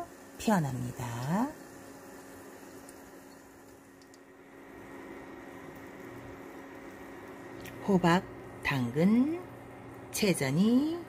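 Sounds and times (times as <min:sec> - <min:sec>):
pancake sizzling in a pan: 0:00.0 - 0:07.6
low steady hum: 0:00.0 - 0:11.0.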